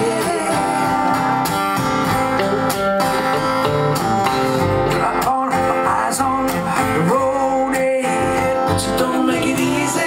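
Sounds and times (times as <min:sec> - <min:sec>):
acoustic guitar strumming: 0:00.0 - 0:10.0
electric guitar: 0:00.0 - 0:10.0.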